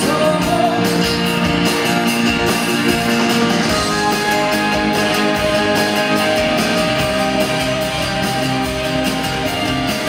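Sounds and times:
person singing: 0.0 - 3.0, 3.7 - 9.0.

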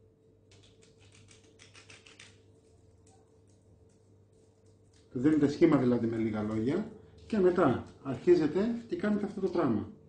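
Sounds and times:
parchment paper crackling: 0.4 - 8.4.

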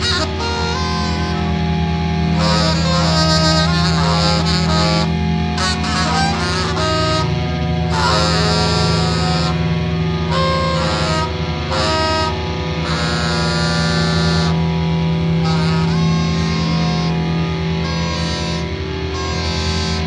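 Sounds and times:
low drone: 0.0 - 20.0
rock band playing: 0.0 - 20.0.

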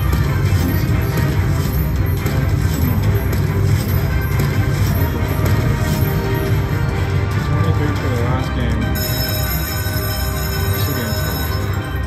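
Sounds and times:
slot machine electronic music: 0.0 - 12.0.

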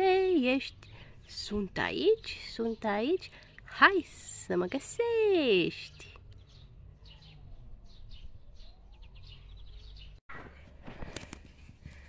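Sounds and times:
birds chirping: 0.0 - 10.8.

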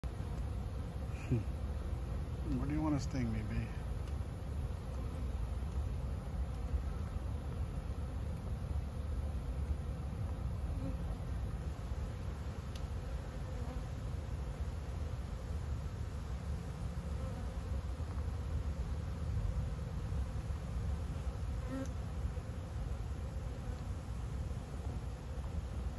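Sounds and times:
honeybees buzzing: 0.1 - 25.9.

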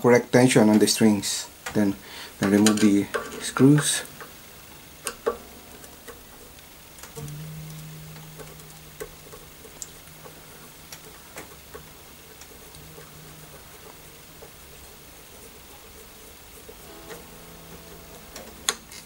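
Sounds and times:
low guitar string ringing: 2.1 - 15.9, 16.8 - 19.0.

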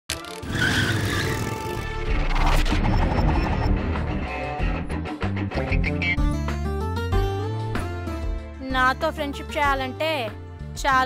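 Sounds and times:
music: 0.1 - 11.0
tyres screeching: 0.4 - 2.0.

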